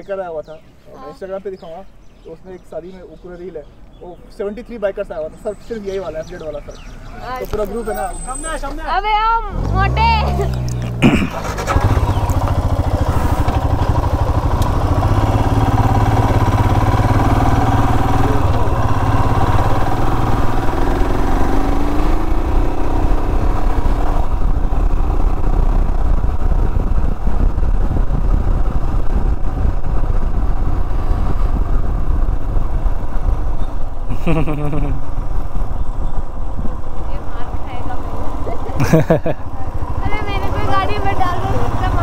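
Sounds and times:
motorcycle engine running: 9.4 - 42.0.

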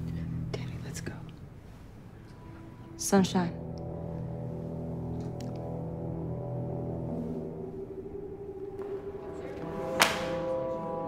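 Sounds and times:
tense film score tones: 2.0 - 11.0.

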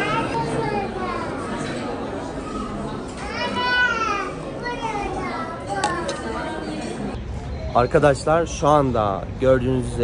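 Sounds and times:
chatter of many voices: 0.0 - 10.0.

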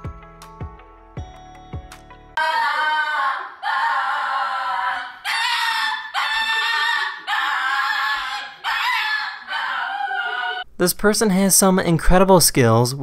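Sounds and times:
small dog howling: 2.4 - 10.7.

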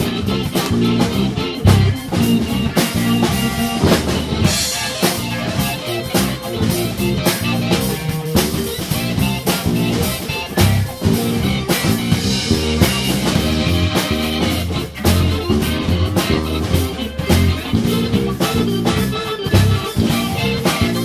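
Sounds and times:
drum kit beat: 0.0 - 21.0
guitar: 0.0 - 21.0
organ: 0.0 - 21.0.

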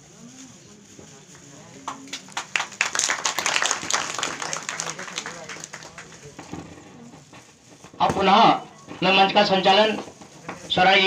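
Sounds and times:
small group applauding: 1.8 - 6.8.

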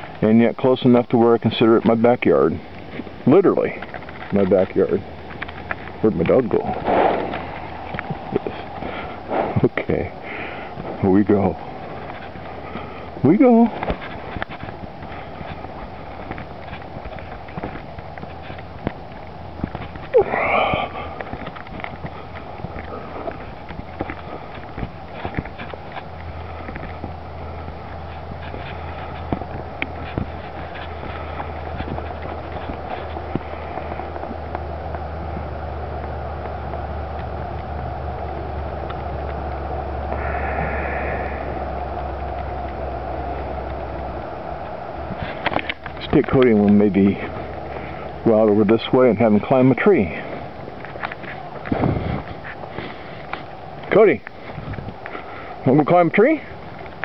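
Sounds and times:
wind rumble on microphone: 1.3 - 57.0
footsteps on grass: 2.7 - 55.3
short rising and falling call: 39.9 - 43.7.

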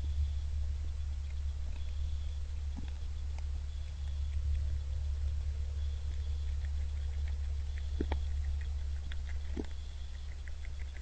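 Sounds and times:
low electrical hum: 0.0 - 11.0
deer crunching corn: 6.0 - 11.0.

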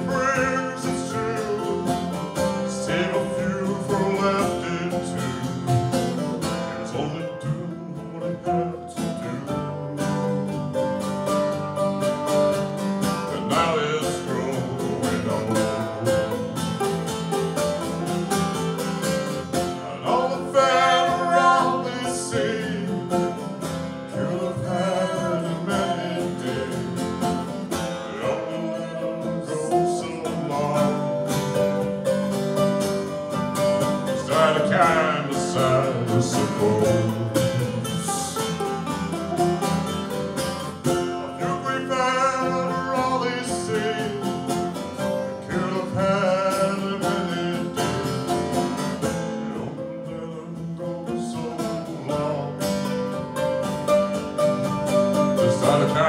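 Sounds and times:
man singing: 0.0 - 11.2, 13.0 - 17.0, 17.8 - 31.9, 33.9 - 38.9, 40.9 - 53.6, 55.2 - 56.0
mandolin: 0.0 - 56.0
strummed acoustic guitar: 0.0 - 56.0.

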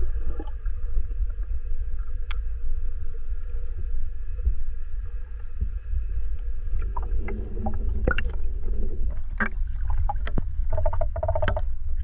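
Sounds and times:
underwater clicks and crackles: 0.0 - 2.7, 5.3 - 12.0
underwater low rumble: 0.0 - 12.0.

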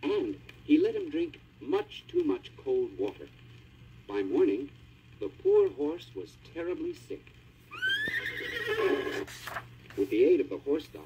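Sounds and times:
horse whinny: 7.7 - 9.3.

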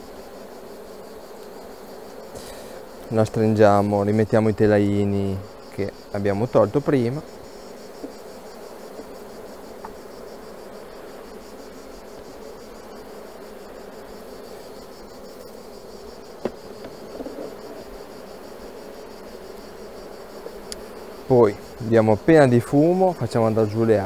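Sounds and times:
honeybees buzzing: 0.0 - 24.0
knock of wooden frames: 16.4 - 17.6.

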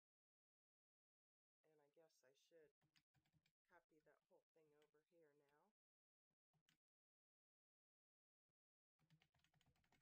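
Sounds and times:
keyboard typing: 9.0 - 10.0.

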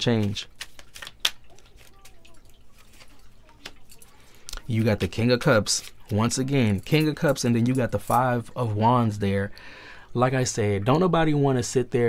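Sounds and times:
card handling: 0.0 - 6.4.

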